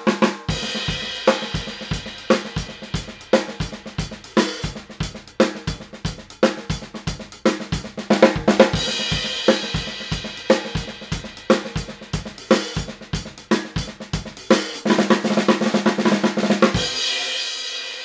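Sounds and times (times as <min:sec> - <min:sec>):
snare drum played with sticks: 0:00.0 - 0:17.3.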